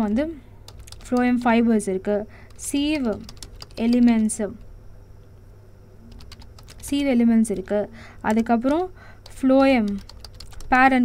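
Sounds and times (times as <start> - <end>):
computer keyboard typing: 0.7 - 1.6, 2.4 - 4.7, 6.1 - 10.8.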